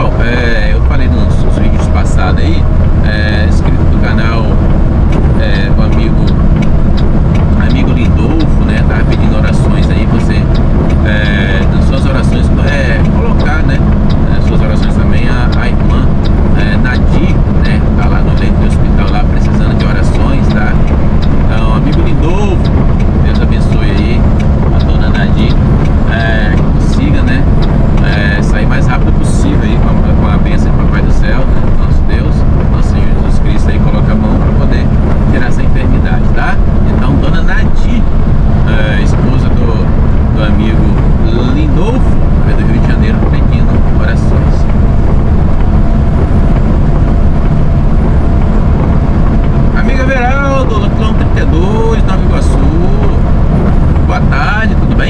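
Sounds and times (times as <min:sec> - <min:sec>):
diesel truck engine running: 0:00.0 - 0:55.0.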